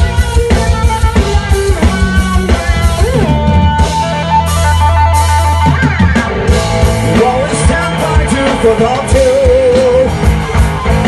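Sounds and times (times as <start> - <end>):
bass guitar: 0.0 - 11.0
electric guitar solo: 0.0 - 11.0.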